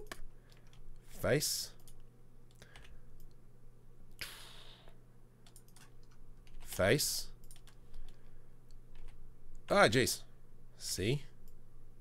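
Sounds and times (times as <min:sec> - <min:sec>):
low electrical hum: 0:00.0 - 0:12.0
keyboard and mouse clicks: 0:05.4 - 0:06.7, 0:07.4 - 0:08.2.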